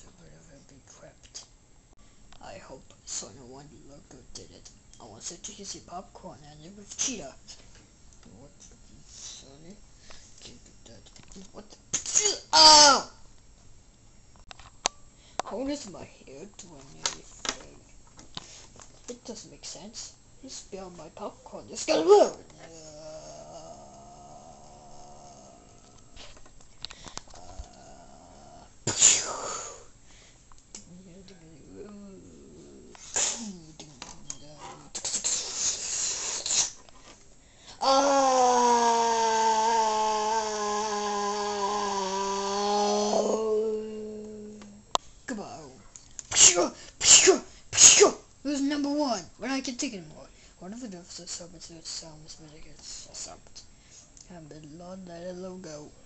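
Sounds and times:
person's loud breathy outbursts: 37.6s - 44.1s.

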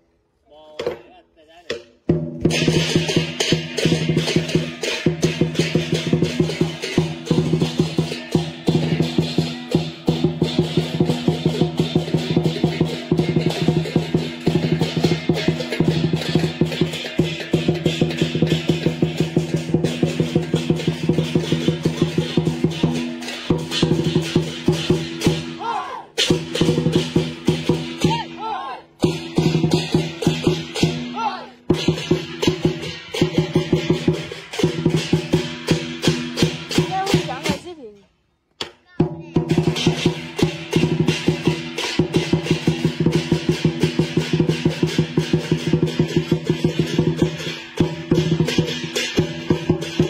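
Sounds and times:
fast drum beat: 1.8s - 38.0s, 38.9s - 50.0s
cymbals crashing: 2.5s - 37.8s, 39.4s - 50.0s.

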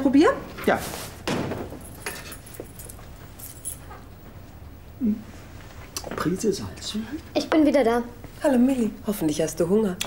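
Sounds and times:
keys clicking and jingling: 1.8s - 4.1s.

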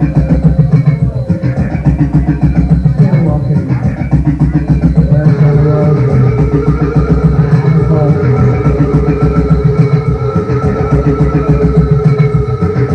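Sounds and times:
live band playing droning music: 0.0s - 12.9s.

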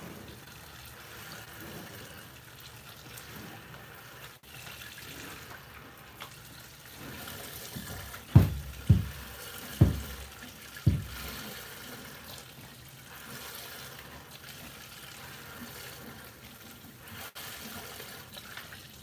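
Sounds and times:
dull thumps: 7.8s - 11.4s.

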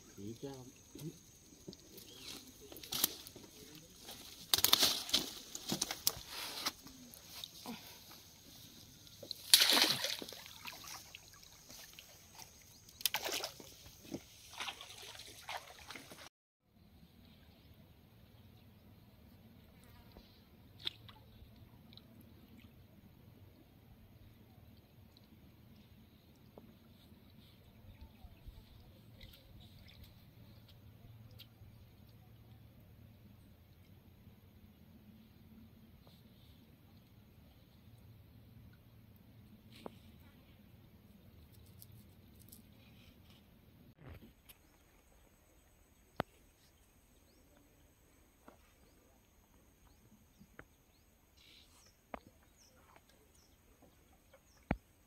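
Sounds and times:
riverside ambience: 0.0s - 16.1s
fish thrashing: 9.2s - 11.1s
small ticks: 41.4s - 43.5s.

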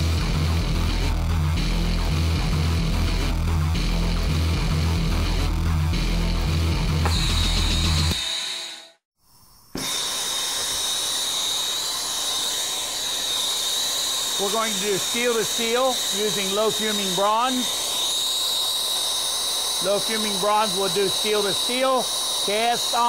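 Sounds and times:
rock music with heavy beat: 0.0s - 8.2s
torch flame hissing: 9.6s - 23.0s.

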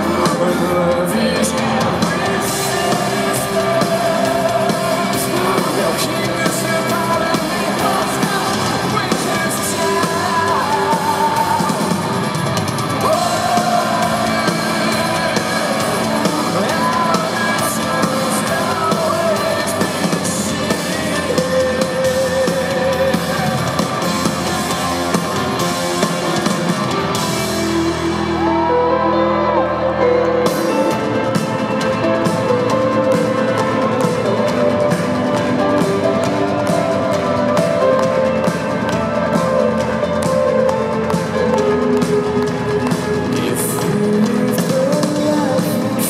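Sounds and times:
man singing: 0.0s - 27.8s, 28.4s - 46.0s
live rock band playing: 0.0s - 46.0s.

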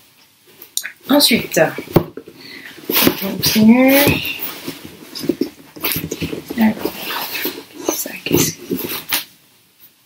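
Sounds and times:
paper and packaging rustling: 1.6s - 9.3s.

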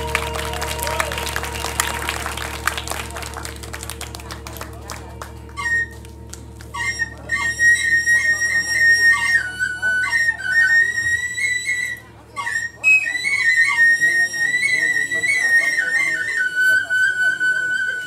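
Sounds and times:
bamboo flute melody: 0.0s - 18.0s
gamelan percussion strokes: 0.0s - 18.0s.

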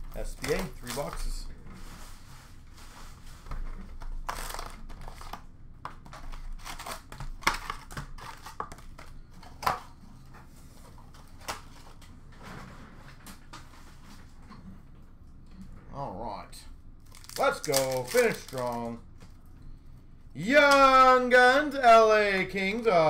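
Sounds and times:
plastic wrap crinkling and tearing: 4.2s - 5.4s, 17.0s - 19.0s.

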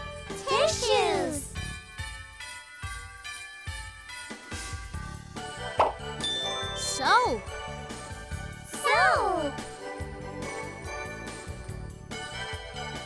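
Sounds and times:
cheerful children's music: 0.0s - 13.0s
tinkling chime notes: 1.0s - 8.7s
short pop: 5.8s - 6.0s.

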